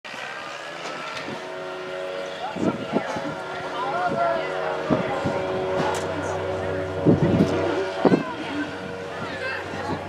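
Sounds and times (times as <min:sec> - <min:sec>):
mechanical hum: 0:00.1 - 0:10.0.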